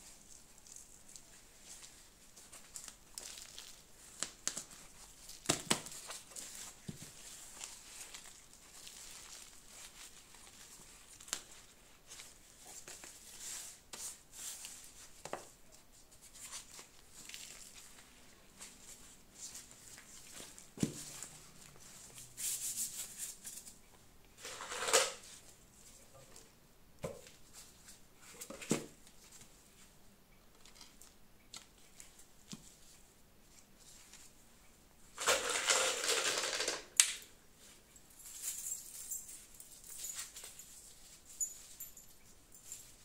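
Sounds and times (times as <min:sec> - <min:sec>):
metal chains clinking: 0:38.2 - 0:40.8, 0:41.4 - 0:43.0.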